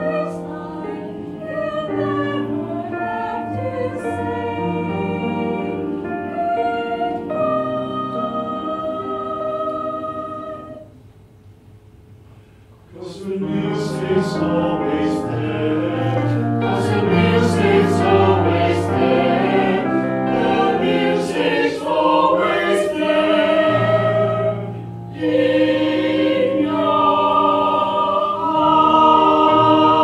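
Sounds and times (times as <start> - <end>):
mixed choir singing: 0.0 - 11.0, 12.9 - 30.0.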